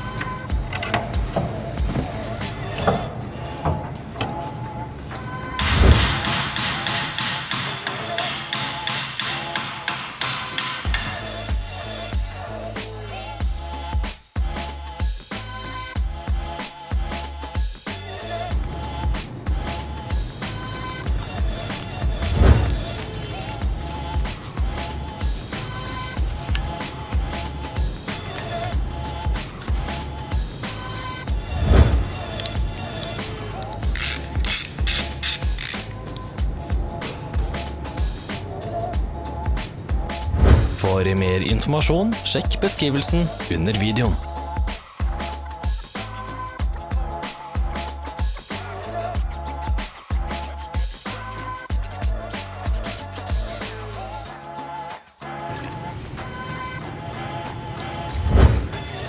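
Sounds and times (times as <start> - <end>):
background music with beat: 0.0 - 4.8, 5.5 - 59.0
hammer striking steel: 5.6 - 11.1
hand ratchet clicking: 33.8 - 36.3.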